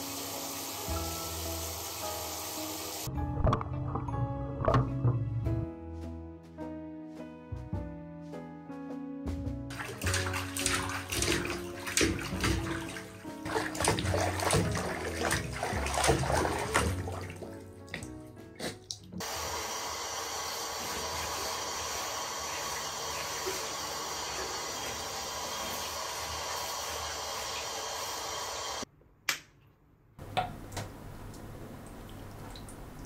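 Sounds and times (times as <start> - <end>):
shower head spraying water: 0.0 - 3.1, 9.7 - 17.2, 19.2 - 28.8
water dripping from fur: 9.7 - 19.2, 30.8 - 33.0
dog splashing in bathwater: 9.7 - 19.6, 20.7 - 27.9.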